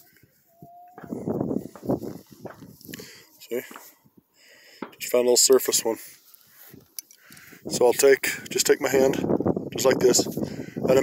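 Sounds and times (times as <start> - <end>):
hand scraping gravelly dirt: 1.0 - 4.1, 4.8 - 11.0.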